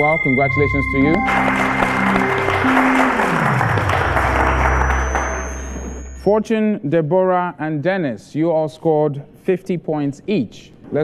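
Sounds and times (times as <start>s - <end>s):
audience applauding: 1.1s - 6.1s.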